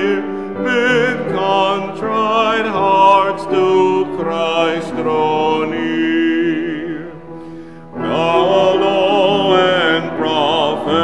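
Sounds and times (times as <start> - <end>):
man singing a hymn with vibrato: 0.0 - 11.0
piano accompaniment: 0.0 - 11.0.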